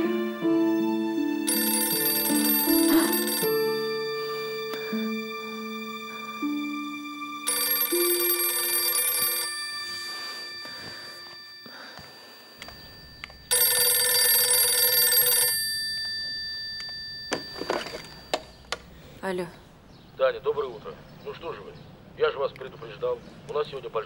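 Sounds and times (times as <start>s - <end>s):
telephone bell ringing: 1.4s - 4.5s, 7.4s - 18.6s.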